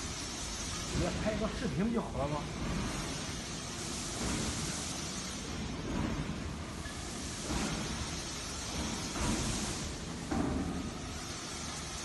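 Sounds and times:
factory hall hiss: 0.0 - 12.0.

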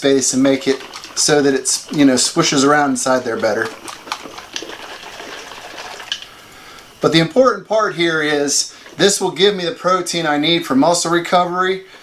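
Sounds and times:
liquid sloshing in shaken container: 0.0 - 6.3, 8.3 - 9.6.

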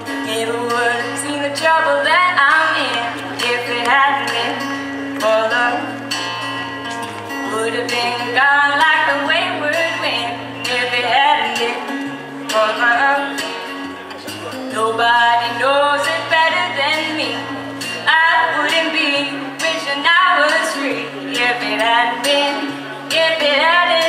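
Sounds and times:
woman singing a country ballad: 0.0 - 6.4, 7.3 - 13.6, 14.7 - 24.0
guitar accompaniment: 0.0 - 24.0.

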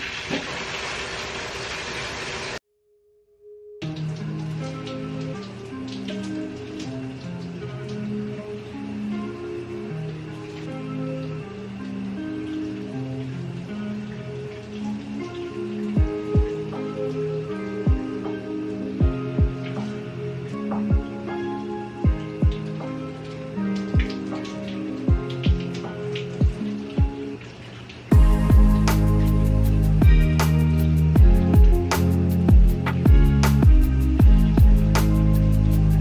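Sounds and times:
shower water running: 0.0 - 2.6, 3.8 - 36.0
slow chord music: 2.8 - 27.3, 28.1 - 36.0
deep beats: 16.0 - 16.8, 17.9 - 18.1, 19.0 - 19.9, 20.7 - 21.2, 22.0 - 22.9, 23.9 - 24.2, 25.1 - 27.2, 28.1 - 36.0.

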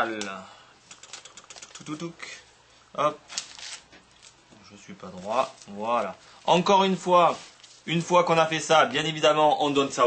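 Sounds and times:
newspaper crackling and rustling: 3.2 - 8.5.

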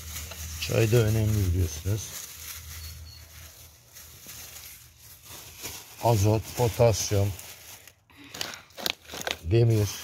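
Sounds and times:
rustling and clicks of scraps: 0.0 - 10.0.

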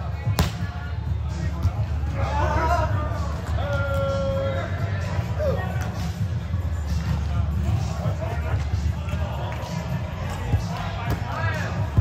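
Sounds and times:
background music: 0.0 - 12.0
volleyball smack: 0.4 - 0.6.

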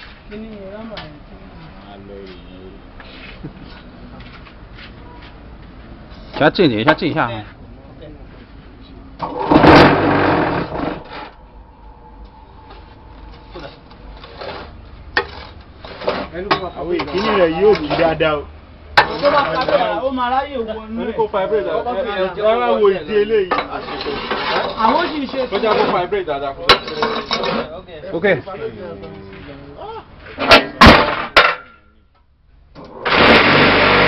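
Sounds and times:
concrete block machine vibrator: 9.2 - 11.3, 33.0 - 34.0.

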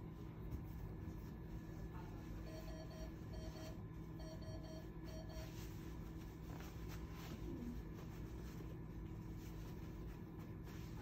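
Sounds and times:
steady low hum: 0.0 - 11.0
electronic alarm beeping: 2.4 - 5.5.

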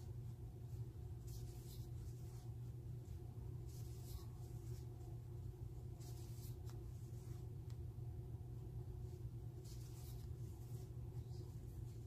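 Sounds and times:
crochet hook rustling yarn: 0.0 - 7.8, 9.0 - 12.0
steady low hum: 0.0 - 12.0.

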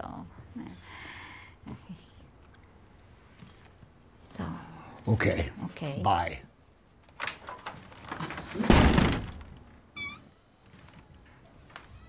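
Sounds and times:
door thudding shut: 8.3 - 9.6.

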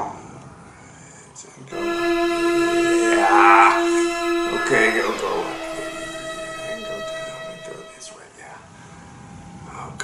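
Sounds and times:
held electronic tone: 1.7 - 8.2.

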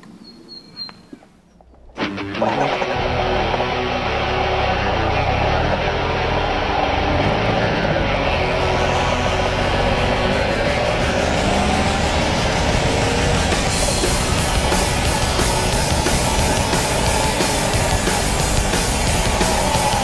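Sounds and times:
motorcycle engine running: 2.0 - 20.0
rock music: 2.0 - 20.0.

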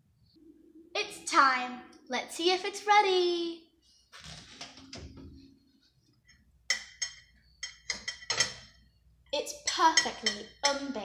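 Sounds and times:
forks clinking on ceramic dish: 6.7 - 8.8, 9.7 - 10.9.

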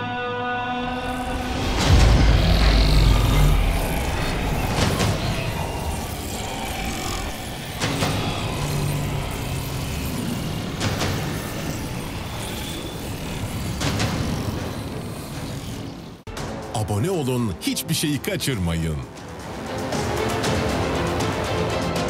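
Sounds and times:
dark rumbling drone: 0.3 - 16.7.

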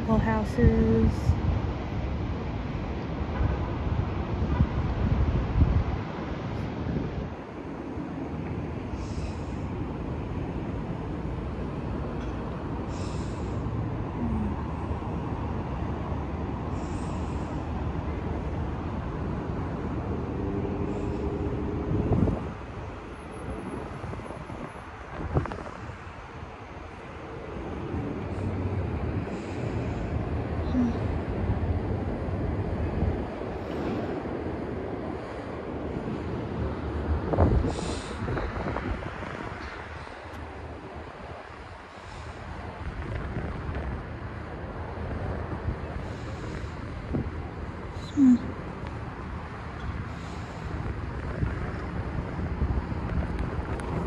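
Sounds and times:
road and engine rumble: 0.0 - 54.0.

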